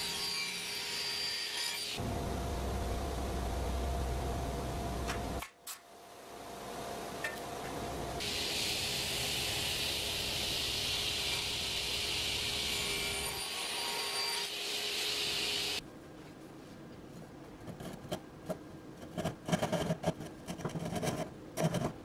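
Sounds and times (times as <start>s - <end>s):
table saw cutting wood: 0.0s - 2.0s, 11.0s - 15.8s.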